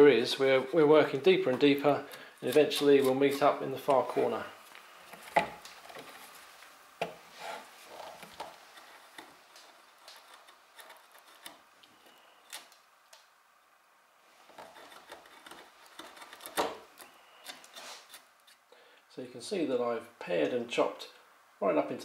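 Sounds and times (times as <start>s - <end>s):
chisel scraping wood: 1.6s - 12.7s, 14.4s - 18.6s.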